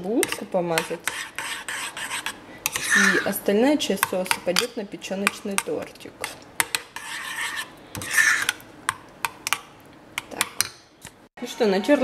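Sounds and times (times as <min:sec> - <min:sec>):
metal spoon scraping glass bowl: 0:00.7 - 0:03.4, 0:06.8 - 0:08.6.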